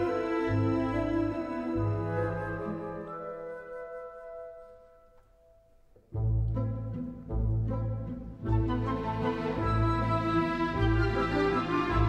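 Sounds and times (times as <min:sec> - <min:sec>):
orchestral string music: 0:00.0 - 0:04.7, 0:06.1 - 0:12.0.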